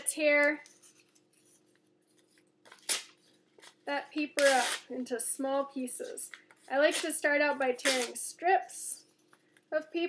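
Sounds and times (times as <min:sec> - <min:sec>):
paper handling: 0:00.6 - 0:03.8
paper tearing: 0:02.7 - 0:03.2, 0:04.4 - 0:04.9, 0:07.8 - 0:08.2.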